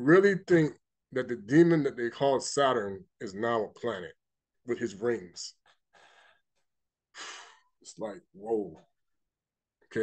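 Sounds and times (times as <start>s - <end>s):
man breathing: 5.7s - 7.8s
breathy sigh: 7.1s - 7.8s.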